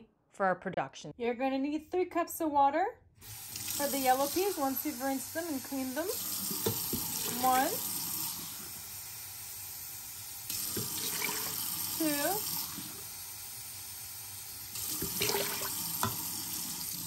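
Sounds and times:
water pouring into pot of peas: 10.5 - 13.0, 14.7 - 17.0.

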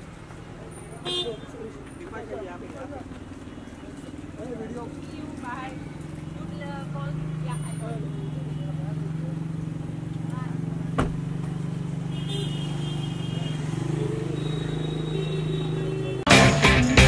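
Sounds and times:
vehicle engine idling: 0.0 - 16.8
car door slamming: 10.9 - 11.3.

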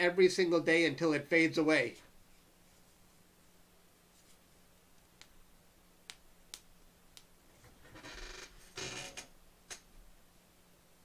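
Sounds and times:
low steady hum: 0.0 - 11.0
faint sharp clicks: 6.1 - 7.3.

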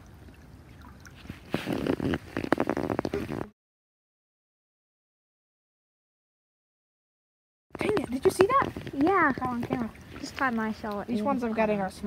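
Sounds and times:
small creek trickling: 0.0 - 3.5, 7.8 - 12.0
person laughing: 3.1 - 3.4.

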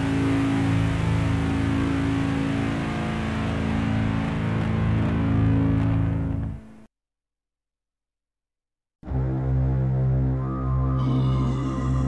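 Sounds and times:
slow distorted metal music: 0.0 - 6.6.

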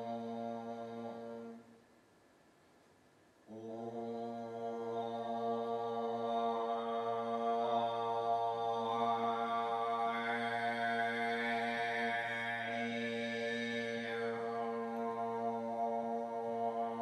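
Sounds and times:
vocal group overtone singing: 0.0 - 1.6, 3.5 - 17.0.

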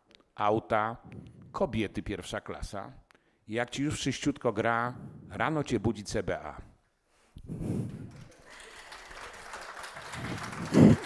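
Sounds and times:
audience applause: 8.1 - 11.0.

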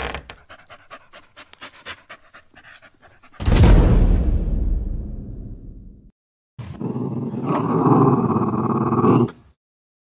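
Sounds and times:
dog growling: 6.7 - 9.6.

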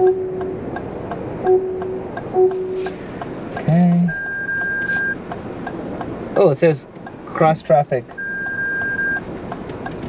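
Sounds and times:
electronic warning beep: 0.0 - 0.6, 1.4 - 2.9, 4.1 - 5.2, 8.2 - 9.2
cabin road noise: 0.0 - 10.0.

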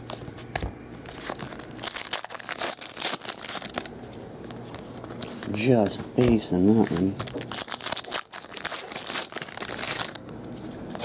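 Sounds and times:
foil wrapper crinkling: 1.0 - 4.1, 6.6 - 11.0.

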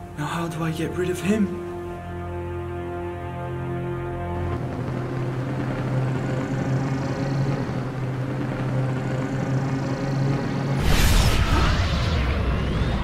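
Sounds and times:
low hum: 0.0 - 13.0
energy charging rush: 10.7 - 13.0
loud energy blast: 10.8 - 13.0.

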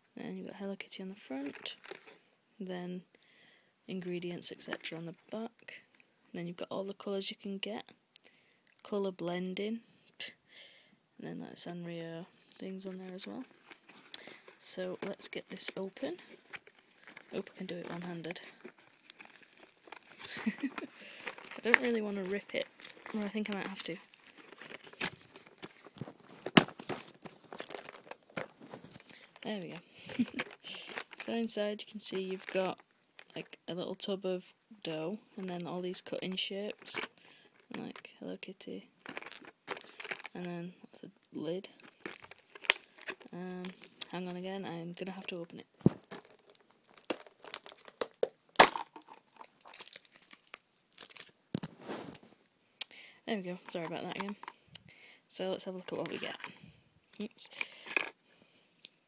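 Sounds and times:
plastic packaging crinkling: 1.3 - 2.2, 12.7 - 34.1, 34.8 - 37.9, 39.0 - 40.5, 41.7 - 52.4, 53.4 - 54.6, 55.6 - 59.0
sharp plastic crack: 18.5 - 31.3, 41.8 - 44.1, 45.8 - 51.7.

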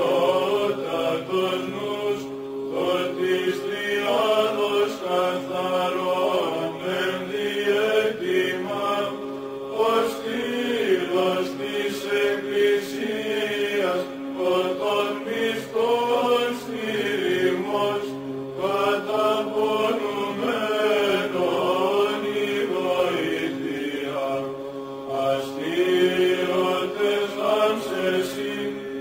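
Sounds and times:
voices chanting a melody: 0.0 - 29.0.

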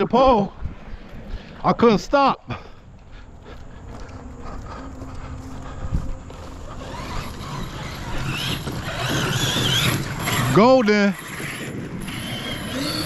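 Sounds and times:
footsteps on dirt: 0.1 - 10.6
rising whirring noise: 2.8 - 13.0.

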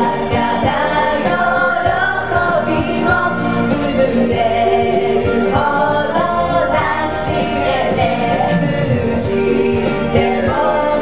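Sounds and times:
loud backing track: 0.0 - 11.0
women singing karaoke: 0.0 - 11.0.

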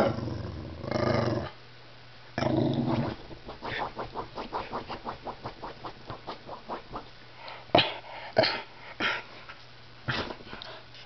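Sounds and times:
dog digging at cushions: 2.9 - 7.1.

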